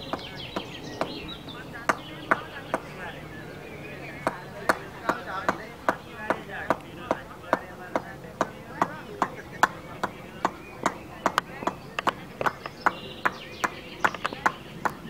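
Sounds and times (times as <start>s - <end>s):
sharp knocks: 4.2s - 15.0s.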